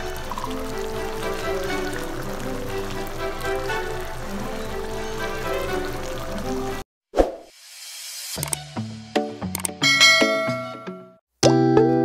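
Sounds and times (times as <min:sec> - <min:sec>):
plucked guitar-like music: 0:09.7 - 0:12.0
bright struck chime: 0:09.8 - 0:11.2.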